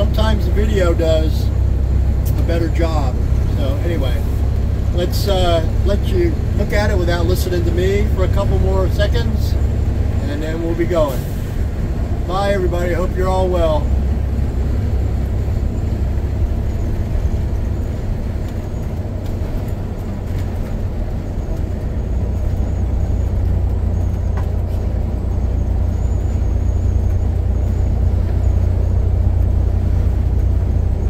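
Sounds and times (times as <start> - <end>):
road and engine rumble: 0.0 - 31.0.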